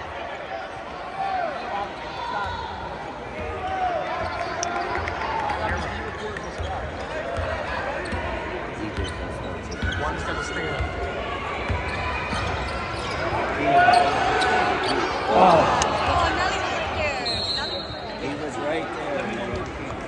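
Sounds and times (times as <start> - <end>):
murmur of crowd voices: 0.0 - 20.0.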